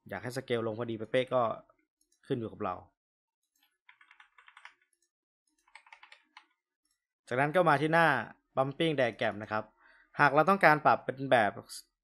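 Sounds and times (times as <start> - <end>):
faint keyboard typing: 3.4 - 7.0.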